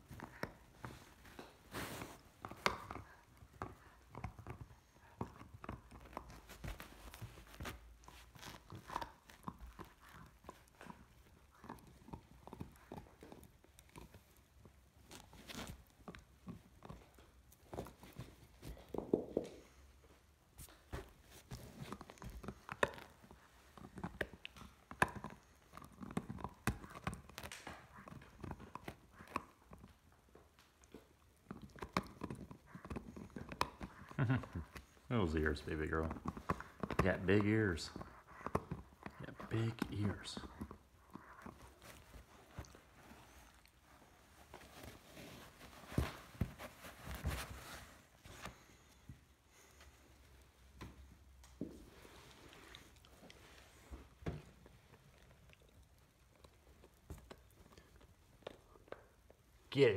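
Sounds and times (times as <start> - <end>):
puppy teeth gnawing a toy: 0.0 - 19.8, 20.6 - 59.9.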